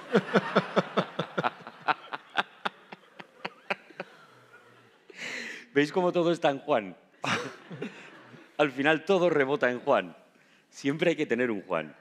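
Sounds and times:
man laughing breathily: 0:00.0 - 0:05.6.

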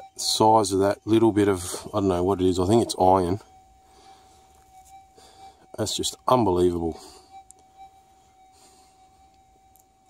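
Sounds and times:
metal detector steady tone: 0:00.0 - 0:10.0.

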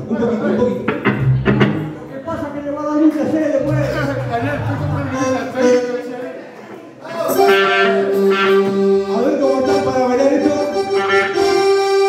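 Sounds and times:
keyboard holding long steady note: 0:07.4 - 0:12.0.

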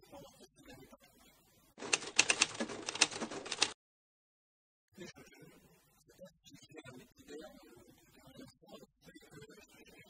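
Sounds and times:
typewriter key clacks: 0:01.8 - 0:03.8.

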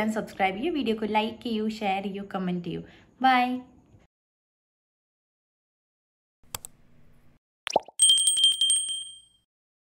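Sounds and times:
click: 0:06.5 - 0:06.8
small notification bell trill: 0:08.0 - 0:09.5.

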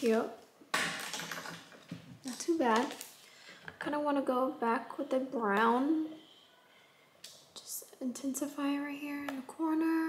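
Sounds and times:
woman speaking: 0:00.0 - 0:00.4, 0:02.2 - 0:03.0, 0:03.8 - 0:06.2, 0:07.6 - 0:10.0.

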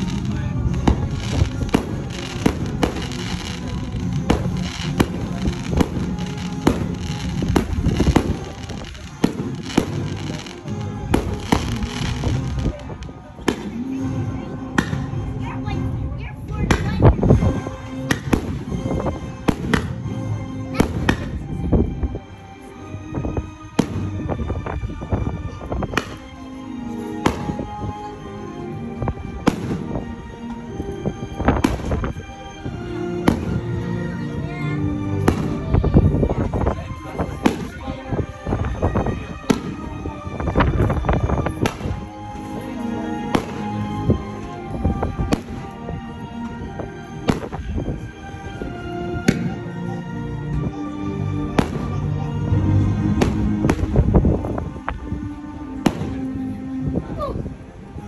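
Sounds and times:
fireworks bangs: 0:00.0 - 0:13.8, 0:27.2 - 0:27.8, 0:35.2 - 0:37.8, 0:38.5 - 0:42.0, 0:44.9 - 0:45.8, 0:47.3 - 0:47.7, 0:53.1 - 0:54.1
music soundtrack: 0:00.0 - 0:58.0.

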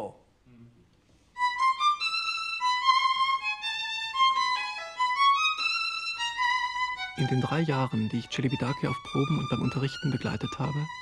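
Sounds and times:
violin slow melody: 0:00.6 - 0:11.0.

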